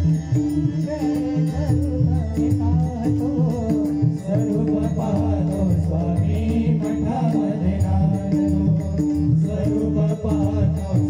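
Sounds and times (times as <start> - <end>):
hand drums playing: 0.0 - 11.0
harmonium held notes: 0.0 - 11.0.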